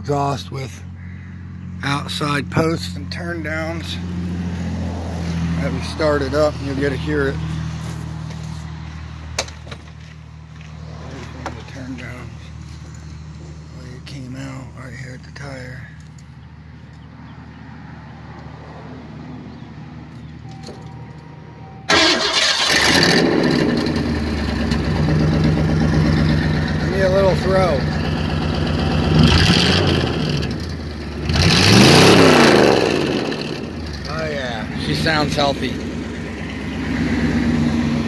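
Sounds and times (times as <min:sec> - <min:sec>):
engine revving: 0:01.8 - 0:08.9, 0:21.9 - 0:38.0
car engine starting and idling: 0:19.5 - 0:38.0.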